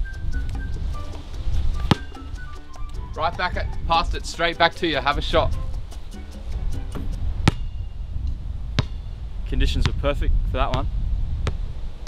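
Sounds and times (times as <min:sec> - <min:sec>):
light background music: 0:00.0 - 0:08.0
low wind rumble: 0:02.4 - 0:12.0.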